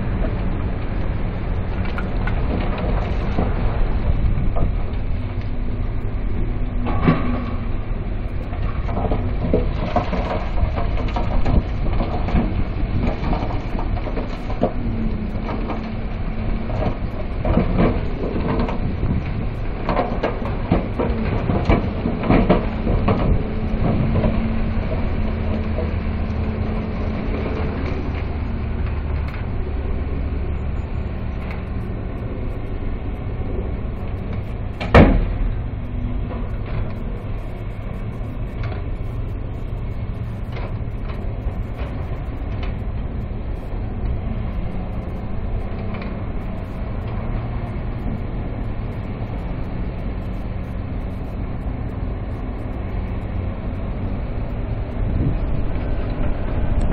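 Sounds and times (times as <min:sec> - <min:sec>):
diesel machinery running: 0:00.0 - 0:56.9.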